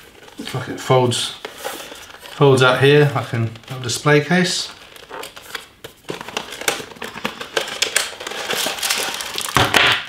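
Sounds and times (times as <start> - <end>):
packaging rustling and crinkling: 0.0 - 10.0.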